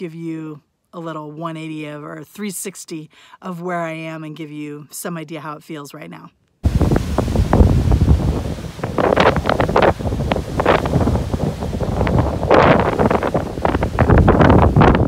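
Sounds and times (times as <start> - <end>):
wind buffeting microphone: 6.6 - 15.0.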